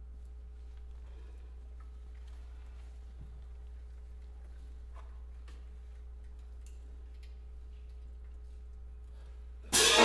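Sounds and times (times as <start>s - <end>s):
steady low hum: 0.0s - 10.0s
faint clicks and taps: 1.7s - 8.8s.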